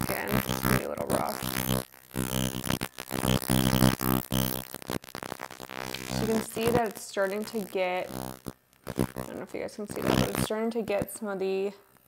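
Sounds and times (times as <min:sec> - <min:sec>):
ultrasonic skin spatula buzzing: 0:00.0 - 0:12.0.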